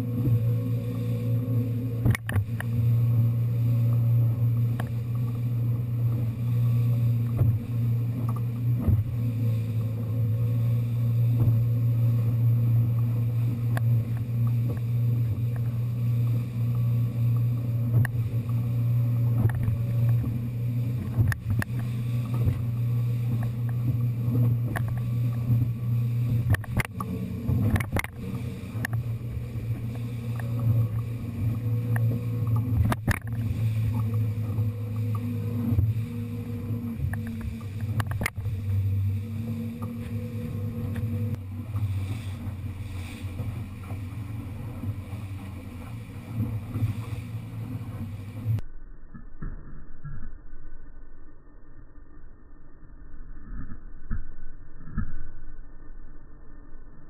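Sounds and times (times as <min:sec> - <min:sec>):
water rushing along hull: 0:00.0 - 0:48.6
boat engine running: 0:00.0 - 0:50.5.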